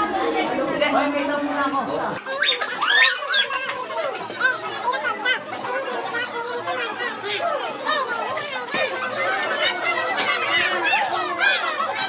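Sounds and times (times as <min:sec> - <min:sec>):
boys chattering and calling: 0:00.0 - 0:12.0.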